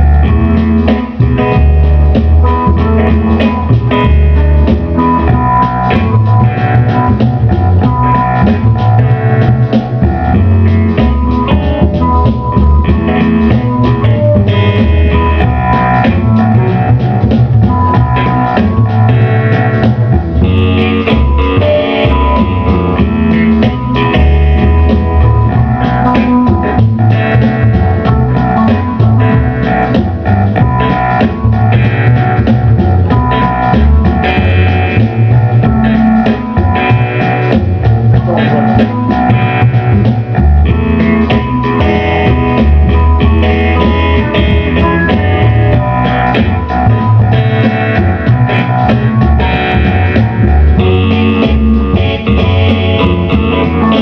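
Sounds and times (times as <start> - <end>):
double bass: 0.0 - 54.0
electric guitar: 0.0 - 54.0
keyboard on clavichord voice: 0.0 - 54.0
steady beat: 0.0 - 54.0.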